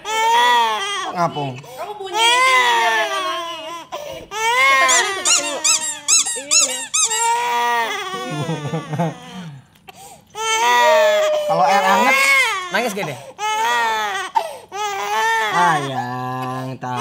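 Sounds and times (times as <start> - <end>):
infant crying: 0.0 - 17.0
rubber duck squeaking: 4.8 - 7.6.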